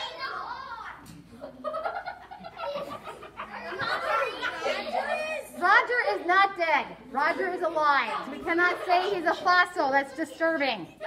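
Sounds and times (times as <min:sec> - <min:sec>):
voices talking and laughing: 0:00.0 - 0:11.0.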